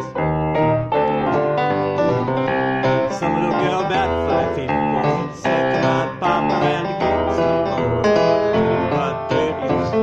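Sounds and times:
piano: 0.0 - 10.0
person singing blues: 2.8 - 10.0.

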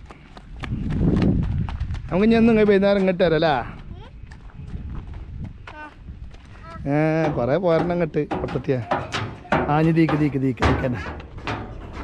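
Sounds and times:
footsteps on gravelly dirt: 0.0 - 12.0.

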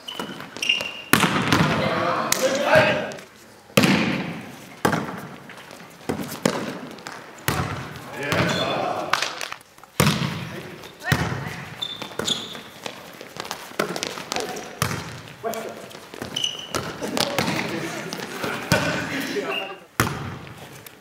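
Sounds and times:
players calling out: 0.2 - 3.3, 7.8 - 9.4, 15.4 - 19.9
hands slapping volleyball: 0.8 - 5.4, 6.1 - 10.5, 12.9 - 19.0.

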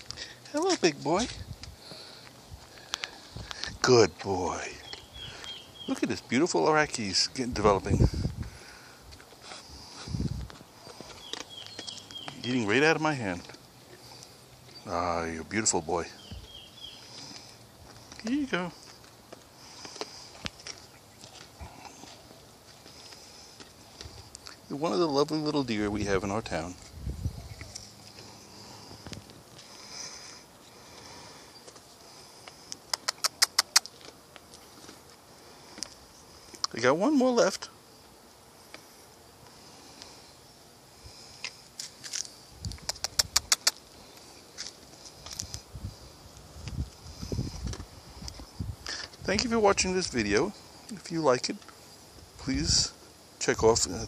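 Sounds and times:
faint sniffing: 8.0 - 11.5, 16.9 - 24.7, 27.2 - 33.9
deer chewing dry apple chips: 8.5 - 14.8, 16.5 - 24.7, 27.6 - 36.7, 41.4 - 42.8
sharp crunching clicks: 32.4 - 35.0, 41.4 - 45.6.

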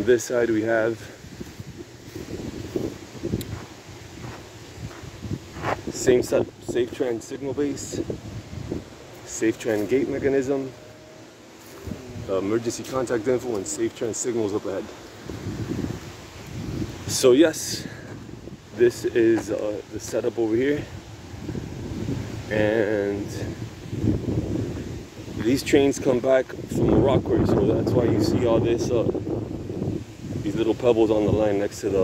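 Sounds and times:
wind buffeting microphone: 0.0 - 32.0
footsteps on gravel: 1.4 - 5.9, 11.6 - 12.0.

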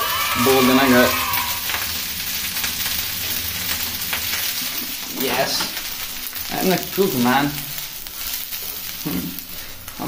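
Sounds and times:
faint crackles: 0.0 - 10.0
steady hiss: 0.0 - 10.0.

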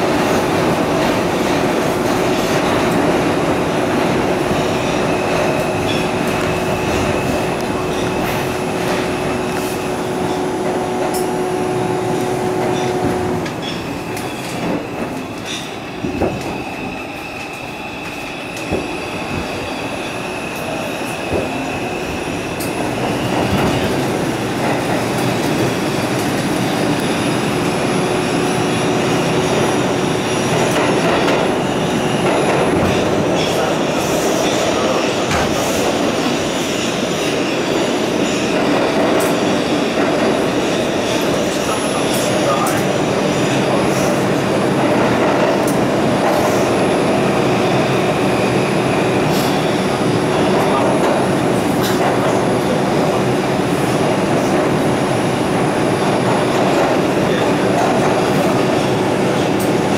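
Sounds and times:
subway train wheel and rail rumble: 0.0 - 59.9.

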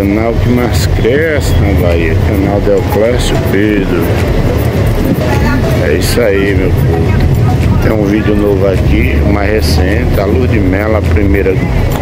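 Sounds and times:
person speaking: 0.0 - 11.7
car engine and road rumble: 0.0 - 12.0.

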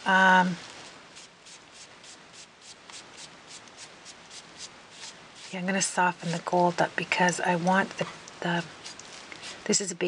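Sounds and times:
rubbing on cardstock: 0.8 - 6.5, 8.6 - 9.7.

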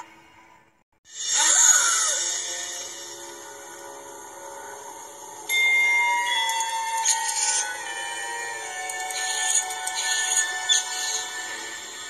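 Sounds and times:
bright chime-like bell tones: 5.5 - 8.6.

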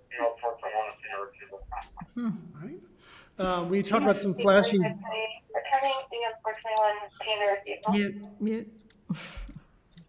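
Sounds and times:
person talking: 0.0 - 2.8, 3.4 - 8.8.

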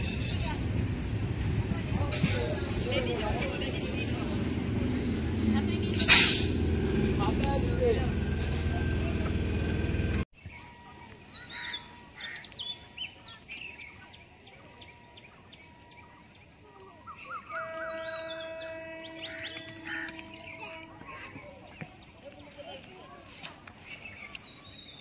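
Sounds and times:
electric train low rumble: 0.0 - 10.2, 17.5 - 21.6
birds chirping: 0.0 - 25.0.

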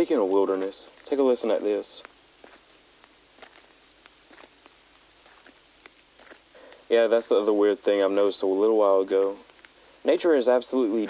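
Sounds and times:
footsteps on trail: 0.0 - 8.0.

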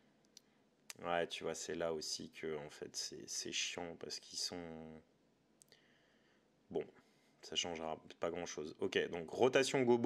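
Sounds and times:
man speaking: 0.9 - 5.1, 6.7 - 10.0.

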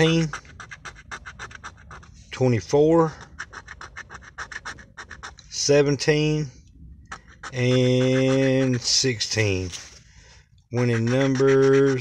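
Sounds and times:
coin scraping lottery ticket: 0.0 - 2.1, 3.1 - 5.6, 7.1 - 9.9, 10.8 - 12.0.

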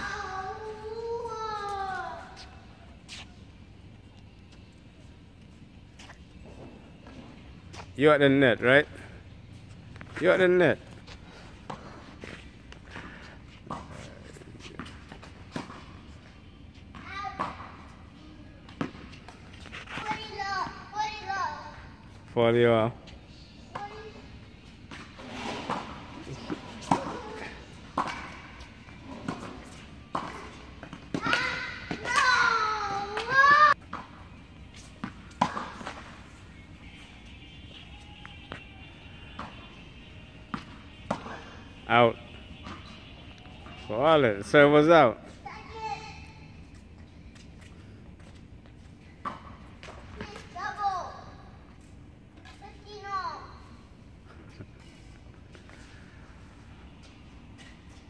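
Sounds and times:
tennis ball bouncing: 13.6 - 16.2, 16.8 - 17.8, 24.8 - 43.9, 47.3 - 50.6
racket hitting tennis ball: 24.9 - 34.1, 34.7 - 36.4.

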